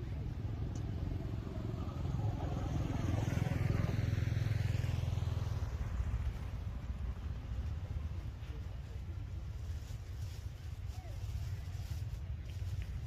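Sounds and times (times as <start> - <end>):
motor vehicle passing by: 0.0 - 8.7.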